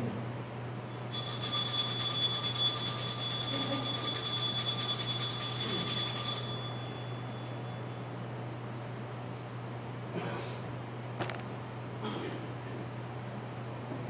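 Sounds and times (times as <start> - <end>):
altar bells ringing: 0.9 - 8.1.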